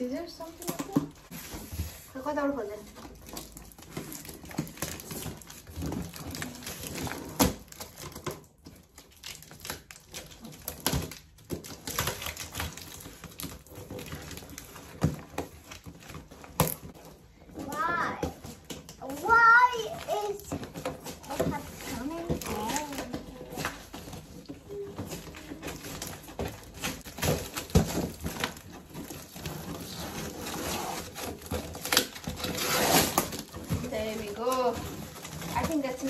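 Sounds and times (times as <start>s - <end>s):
young child's voice: 17.6s - 18.4s, 19.0s - 23.8s.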